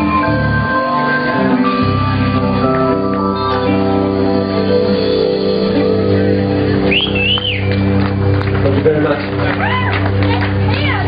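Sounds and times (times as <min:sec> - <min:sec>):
person whistling high note: 0:06.8 - 0:07.8.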